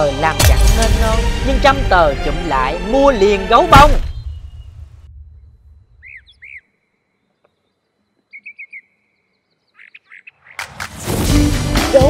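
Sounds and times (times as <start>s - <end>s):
music: 0.0s - 4.1s, 10.6s - 12.0s
bird chirping: 2.9s - 10.6s.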